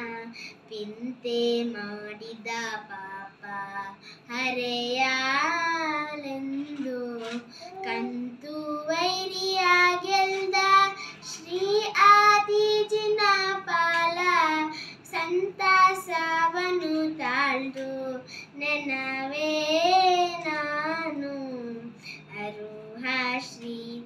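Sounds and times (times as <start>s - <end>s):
girl singing devotional song: 0.0s - 24.0s.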